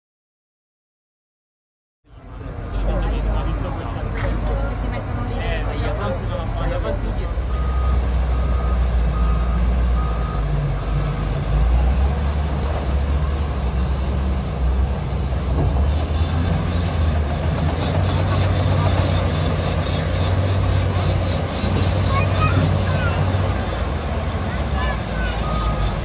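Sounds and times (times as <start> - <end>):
diesel machines rumbling: 2.1 - 26.0
backup alarm beeps: 7.5 - 11.2.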